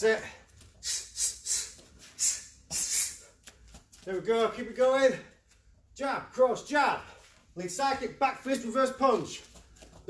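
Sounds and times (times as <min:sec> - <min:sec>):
sharp hissing breaths: 0:00.7 - 0:03.6.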